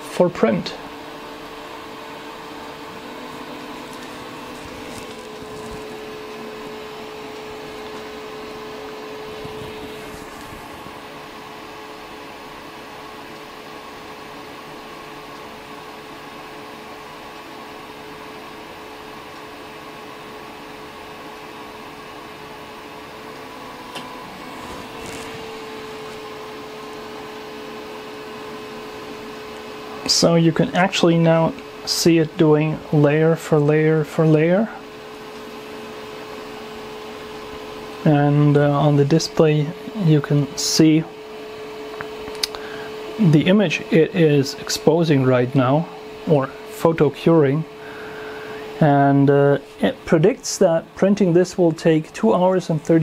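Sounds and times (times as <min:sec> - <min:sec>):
electric fan whirring: 0:00.0 - 0:53.0
small click: 0:42.0 - 0:42.6.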